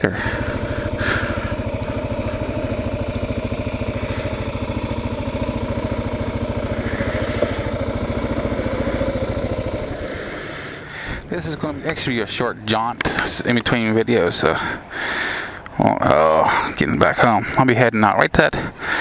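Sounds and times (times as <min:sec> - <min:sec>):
motorcycle engine running: 0:00.0 - 0:17.6.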